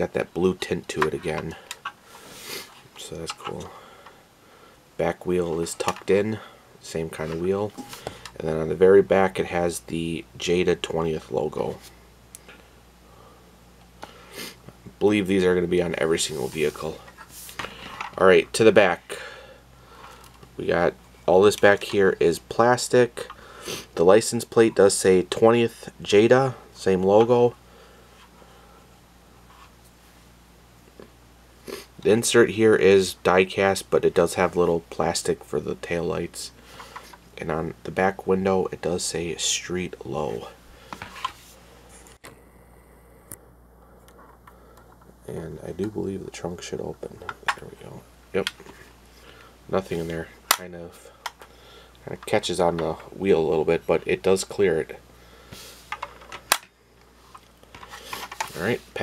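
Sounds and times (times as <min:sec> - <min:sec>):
room hiss: 0:00.0 - 0:59.0.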